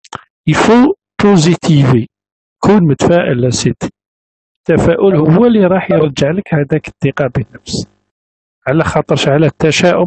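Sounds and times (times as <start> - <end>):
man speaking: 0.1 - 3.9, 4.7 - 7.9, 8.7 - 10.0.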